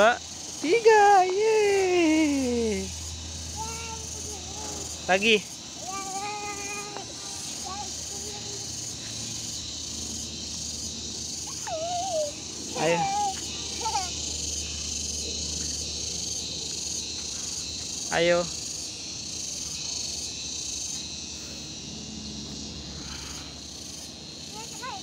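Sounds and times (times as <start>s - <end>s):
insects buzzing: 0.0s - 25.0s
small child voice: 3.5s - 5.1s, 5.7s - 9.4s, 11.4s - 14.5s, 24.4s - 25.0s.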